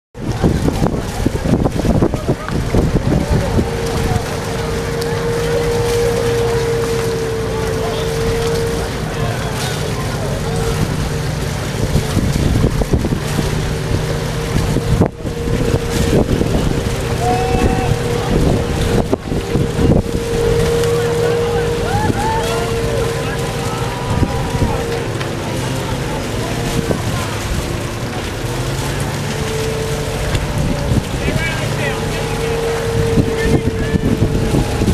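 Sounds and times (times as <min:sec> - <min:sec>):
outboard motors whining: 0:00.1 - 0:34.9
wind rumbling on microphone: 0:00.2 - 0:34.9
distant shouting voices: 0:02.2 - 0:12.1, 0:13.5 - 0:34.9.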